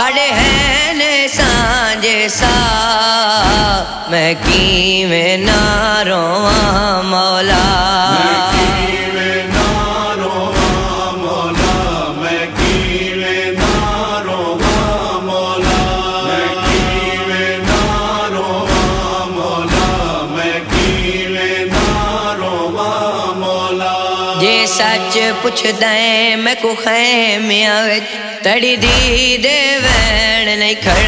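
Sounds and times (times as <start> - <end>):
chanted vocal refrain: 0.0 - 31.0
heavy steady beat: 0.3 - 23.3, 28.8 - 31.0.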